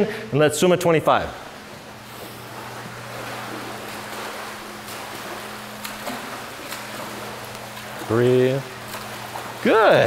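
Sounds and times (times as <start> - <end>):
steady low hum: 0.0 - 10.0
water splashing from swimming strokes: 1.1 - 10.0.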